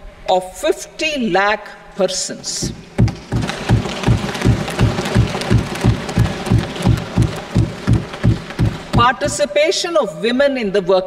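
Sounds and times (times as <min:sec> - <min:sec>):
hands thumping wooden desks: 0:02.6 - 0:09.5.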